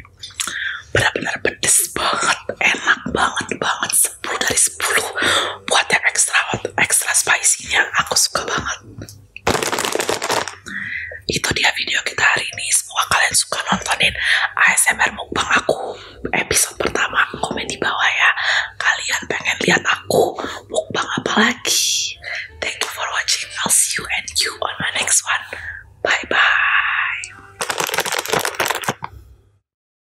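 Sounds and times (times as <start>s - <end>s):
woman whispering: 0.4s - 8.9s, 10.6s - 27.4s.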